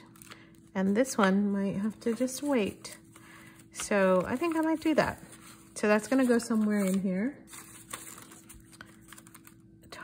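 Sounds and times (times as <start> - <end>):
fingers handling paper pages: 0.0 - 10.0.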